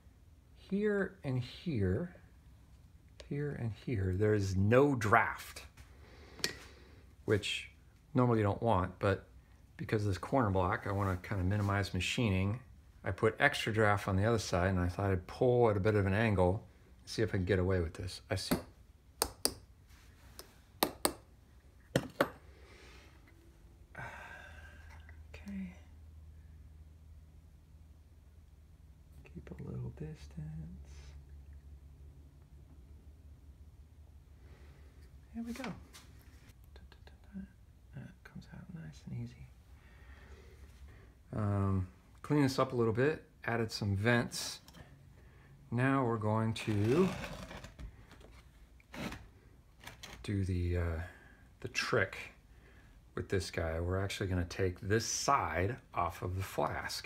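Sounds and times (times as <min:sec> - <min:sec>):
man sighing: 0:23.9 - 0:25.2.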